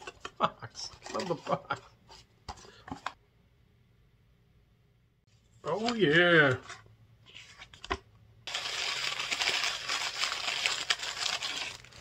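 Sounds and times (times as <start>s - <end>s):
packaging wrap crumpling: 8.5s - 12.0s.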